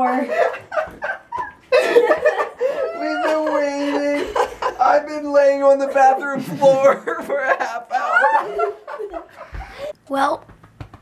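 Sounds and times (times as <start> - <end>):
man and woman laughing: 0.0 - 5.2, 6.0 - 9.9.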